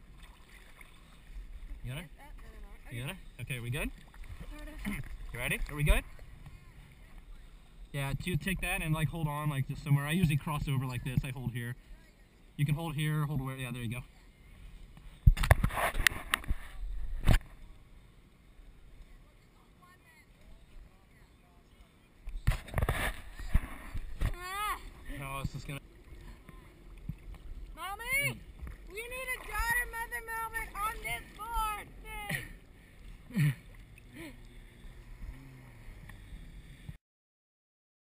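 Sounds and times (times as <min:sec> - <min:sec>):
water splashing and rushing: 0:00.0 - 0:11.8, 0:22.4 - 0:36.4.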